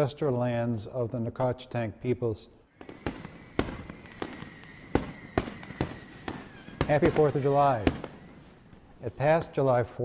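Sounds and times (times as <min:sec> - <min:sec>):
fireworks cracking and popping: 0:02.7 - 0:09.6
faint high whistle: 0:02.8 - 0:08.3.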